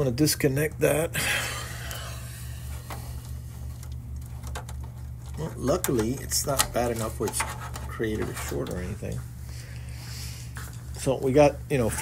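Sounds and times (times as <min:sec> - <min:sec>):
steady low hum: 0:00.0 - 0:12.0
cable rubbing and handling: 0:02.7 - 0:09.5.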